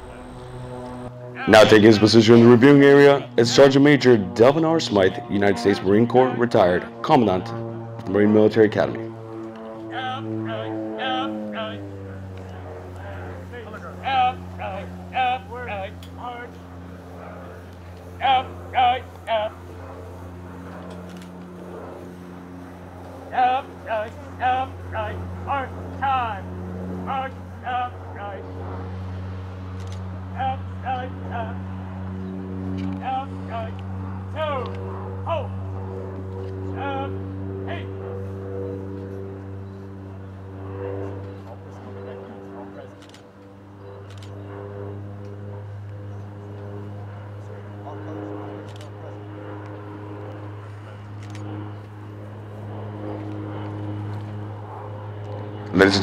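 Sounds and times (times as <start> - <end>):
steady low hum with held tones: 0.0 - 56.0
person shouting commands: 5.0 - 6.6, 9.9 - 11.8, 13.0 - 16.5, 18.2 - 19.6, 23.3 - 26.4, 34.3 - 35.6, 36.8 - 38.0.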